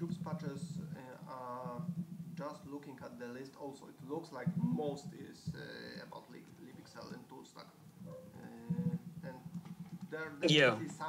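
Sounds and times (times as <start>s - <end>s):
faint murmuring: 0.0s - 11.0s.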